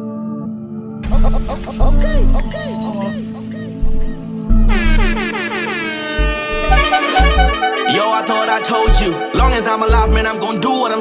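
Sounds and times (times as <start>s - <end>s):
heavy bass hits: 1.0s - 2.5s, 3.8s - 5.3s, 6.2s - 7.6s
hip-hop beat: 1.0s - 11.0s
horn-like sound effect sliding down: 4.5s - 10.1s.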